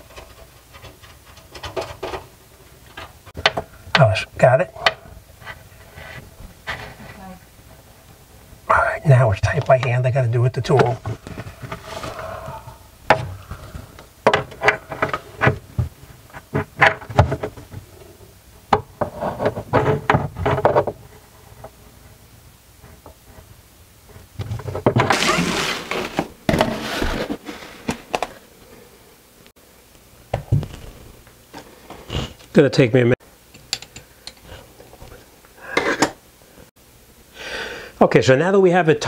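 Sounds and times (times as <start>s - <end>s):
scraping noise: 10.9s - 12.8s, 25.1s - 28.0s.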